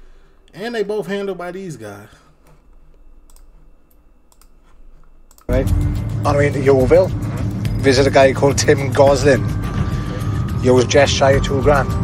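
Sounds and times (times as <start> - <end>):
computer mouse clicks: 2.5 - 5.5.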